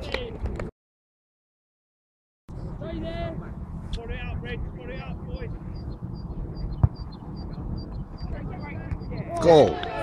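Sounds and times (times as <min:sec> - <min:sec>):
wind rumble on microphone: 0:02.5 - 0:10.0.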